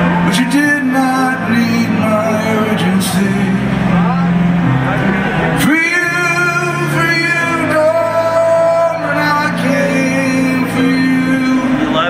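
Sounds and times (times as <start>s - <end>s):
live rock band playing: 0.0s - 12.0s
man singing into microphone: 0.1s - 4.4s, 5.3s - 12.0s.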